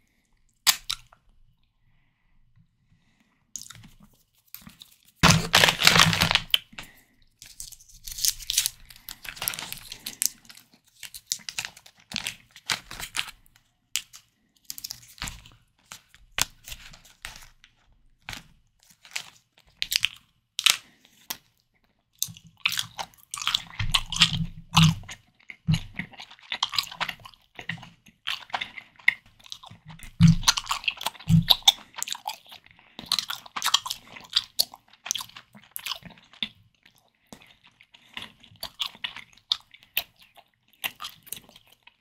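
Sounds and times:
chewing jelly candy: 0.0 - 1.7, 3.6 - 17.6, 18.9 - 42.0
candy wrapper crinkling: 3.6 - 21.5.

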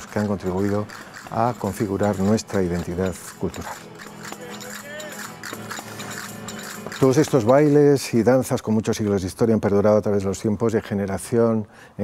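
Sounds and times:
sharp clacks: 0.0 - 8.0
gliding held melody line: 0.0 - 8.3
folk music with guitar: 0.0 - 8.5.

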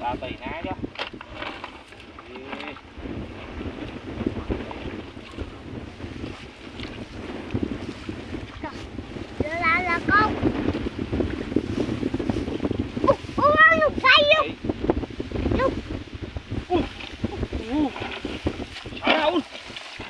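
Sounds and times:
wading through rice and water: 0.0 - 20.0
wind buffeting microphone: 0.0 - 20.0.

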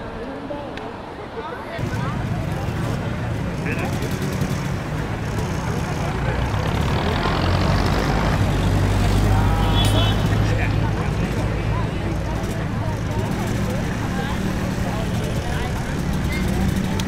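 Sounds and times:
indistinct crowd chatter: 0.0 - 17.0
vehicle engine rumble: 1.8 - 17.0.

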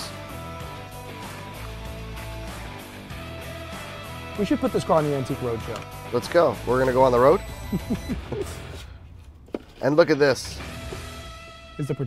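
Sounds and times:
man speaking: 11.8 - 12.0.

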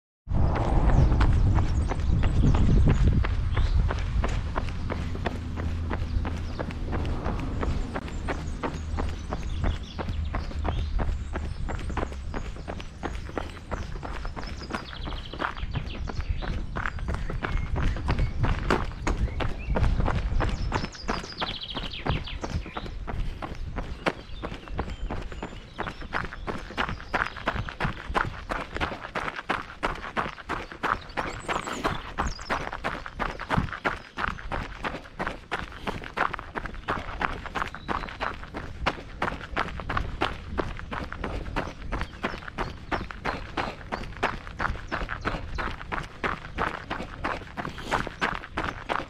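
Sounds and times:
heavy low rumble: 0.3 - 14.8
footsteps on gravel: 0.4 - 49.0
jogging footsteps on cobblestones: 0.4 - 49.0.

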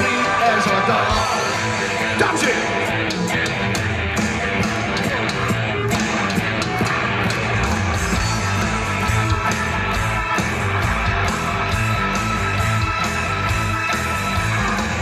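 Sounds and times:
electric guitar: 0.0 - 15.0
steady drum beat: 0.0 - 15.0.

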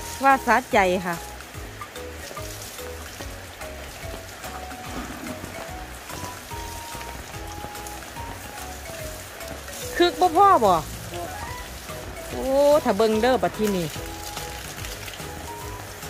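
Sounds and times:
water spraying from a hose: 0.0 - 16.0
background music with bass beat: 1.2 - 16.0.

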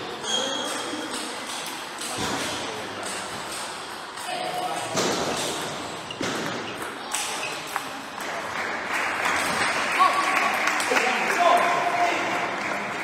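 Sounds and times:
echoing voices: 0.0 - 13.0.

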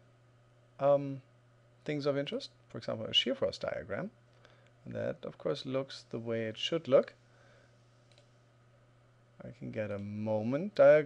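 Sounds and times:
steady low hum: 0.0 - 11.0
computer mouse click: 8.1 - 8.3.

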